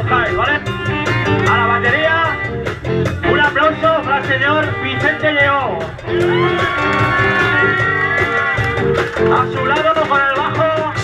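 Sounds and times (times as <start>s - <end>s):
bending lead notes: 0.0s - 10.6s
live rock band playing: 0.0s - 11.0s.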